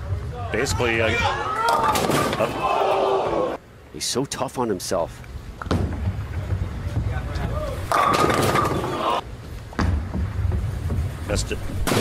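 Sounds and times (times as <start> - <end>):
bowling ball rolling: 5.6 - 11.3
bowling pins clattering: 5.7 - 9.0.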